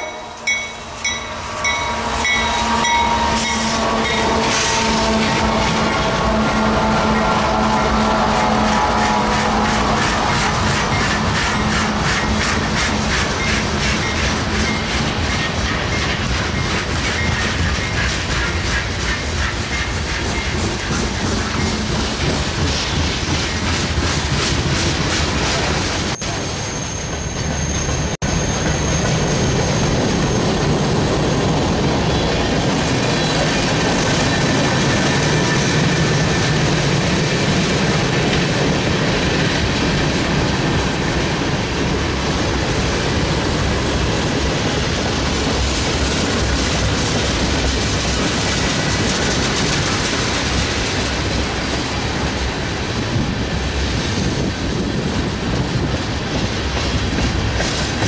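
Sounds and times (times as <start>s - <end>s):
high-pitched wheel squeal: 0.0s - 6.0s, 26.2s - 30.6s
freight train passing: 0.0s - 58.0s
train wheels clattering over rail joints: 8.2s - 26.2s, 27.0s - 58.0s.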